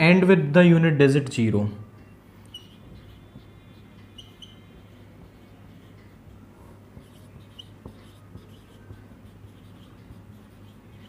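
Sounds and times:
steady low hum: 0:01.8 - 0:11.0
marker scratching on whiteboard: 0:02.4 - 0:11.0
marker tip squeaks: 0:02.4 - 0:11.0.

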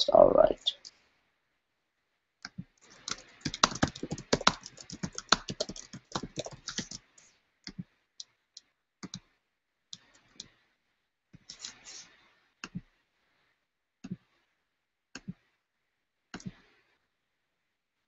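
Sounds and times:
typing on computer keyboard: 0:02.9 - 0:07.1.

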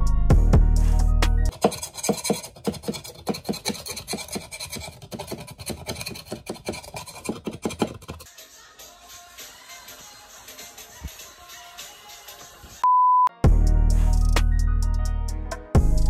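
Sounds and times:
music: 0:00.0 - 0:01.5, 0:08.3 - 0:16.0
putty knife scraping wooden floor: 0:01.5 - 0:08.3
sponge scrubbing: 0:01.5 - 0:08.3.

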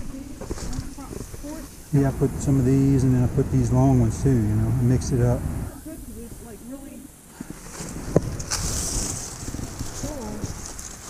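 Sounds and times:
dry corn leaves rustling: 0:00.0 - 0:02.0, 0:05.8 - 0:11.0.

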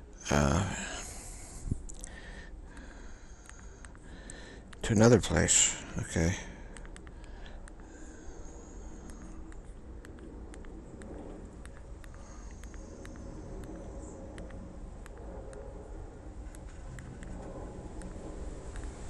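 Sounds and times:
low background rumble: 0:00.0 - 0:19.0
faint clicks: 0:01.8 - 0:04.9, 0:06.7 - 0:15.8, 0:16.4 - 0:19.0.

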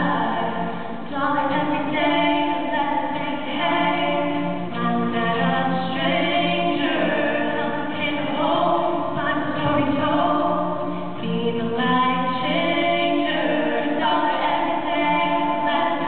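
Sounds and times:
two voices singing in harmony: 0:00.0 - 0:16.0.

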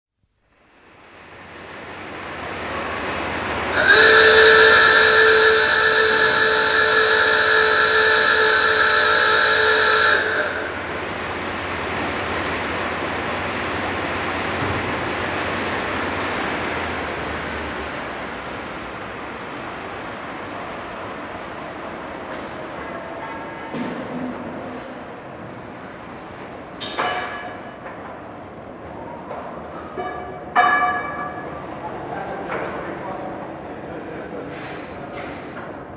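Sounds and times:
machinery steady noise: 0:00.2 - 0:35.9
works hooter long steady note: 0:00.8 - 0:20.4.

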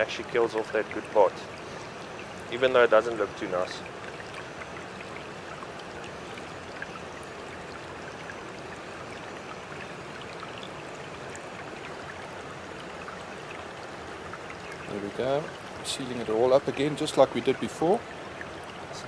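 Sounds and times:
running water trickling: 0:00.0 - 0:19.0.

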